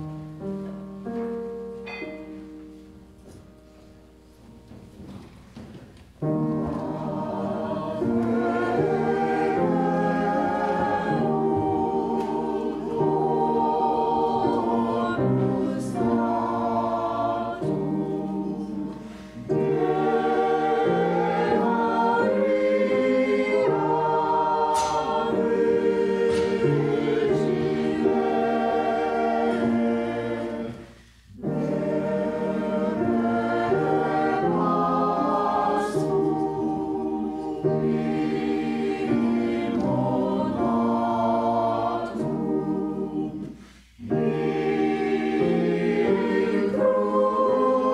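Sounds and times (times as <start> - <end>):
church choir singing: 0.0 - 47.9.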